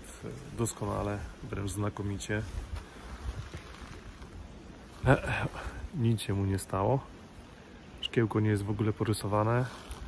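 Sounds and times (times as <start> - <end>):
faint even hiss: 0.0 - 10.0
wind on microphone: 2.4 - 6.0.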